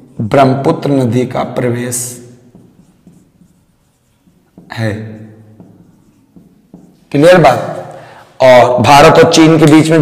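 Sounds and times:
marker pen writing on whiteboard: 0.8 - 8.0.

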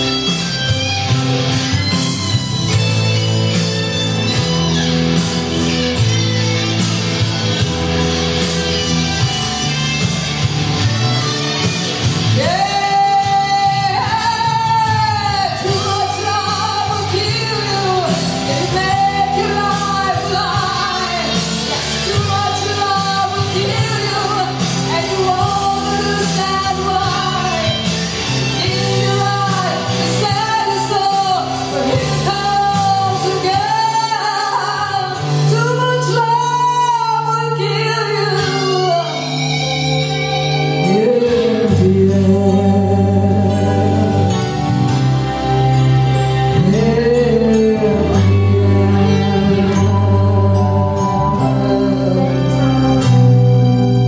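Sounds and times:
backing music: 0.0 - 54.0
low instrumental accompaniment: 0.0 - 54.0
woman singing into a microphone: 12.3 - 45.0, 46.4 - 53.4.

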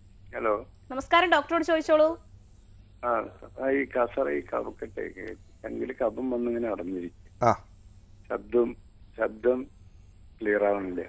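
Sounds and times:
person talking: 3.0 - 7.6, 8.3 - 9.6, 10.4 - 11.0.

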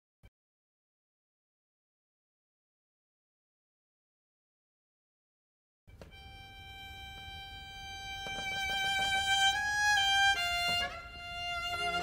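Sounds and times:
lower accompanying instruments: 5.9 - 12.0
solo violin playing tango: 6.0 - 12.0.

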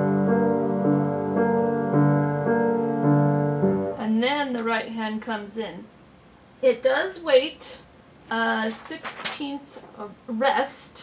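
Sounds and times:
grand piano notes: 0.0 - 4.0
woman talking: 4.0 - 5.9, 6.6 - 11.0.

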